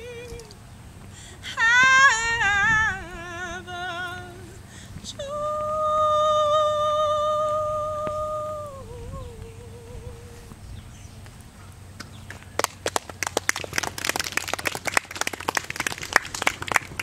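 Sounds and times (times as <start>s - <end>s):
audience clapping: 12.0s - 17.0s.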